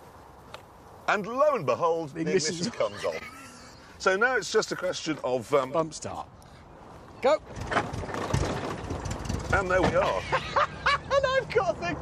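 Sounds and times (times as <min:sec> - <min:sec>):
car rolling on tarmac: 0:07.3 - 0:10.3
car engine turning over and catching: 0:07.5 - 0:10.1.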